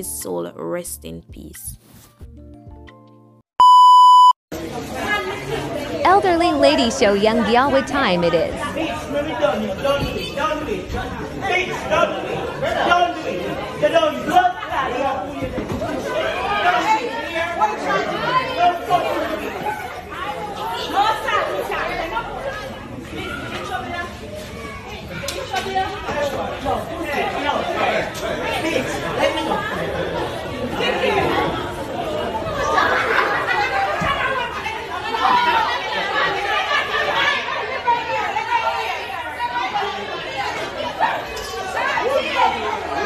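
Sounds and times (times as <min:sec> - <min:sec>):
electronic beep tone: 0:03.6 - 0:04.4
people's voices in noisy room: 0:04.5 - 0:43.0
overlapping chatter of people quarrelling: 0:04.6 - 0:43.0.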